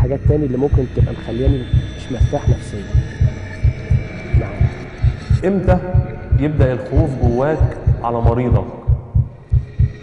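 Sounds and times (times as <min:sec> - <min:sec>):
heartbeat thumps: 0:00.0 - 0:10.0.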